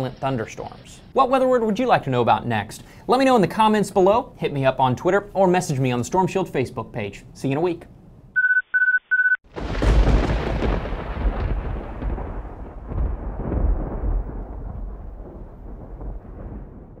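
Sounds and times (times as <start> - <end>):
electronic alert beep: 8.4 - 9.4
thunder clap rumbling: 9.5 - 17.0.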